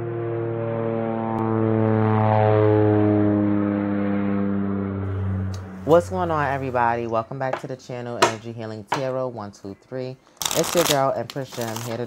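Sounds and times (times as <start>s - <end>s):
droning tone with overtones: 0.0s - 7.1s
person speaking: 5.6s - 12.0s.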